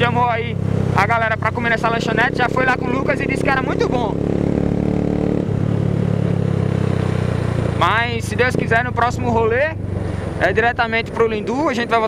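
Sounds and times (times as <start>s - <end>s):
motorcycle engine running: 0.0s - 12.0s
wind and road noise: 0.0s - 12.0s.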